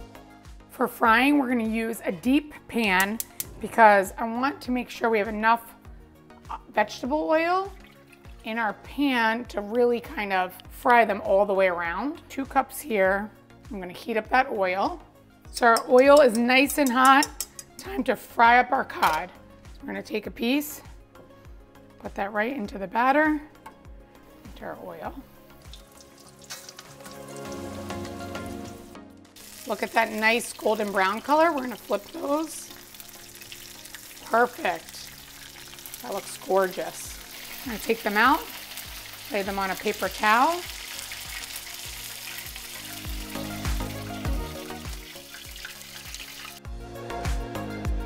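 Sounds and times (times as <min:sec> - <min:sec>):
background music: 0:00.0 - 0:48.0
fish frying in oil: 0:25.5 - 0:28.2, 0:29.4 - 0:46.6.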